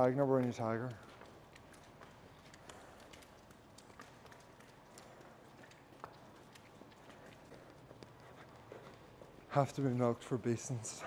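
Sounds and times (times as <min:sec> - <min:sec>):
footsteps on concrete floor: 0:00.0 - 0:11.0.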